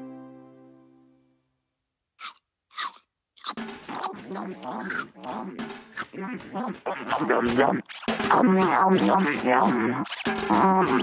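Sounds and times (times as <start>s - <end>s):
cartoon chewing crunch: 2.2s - 11.0s.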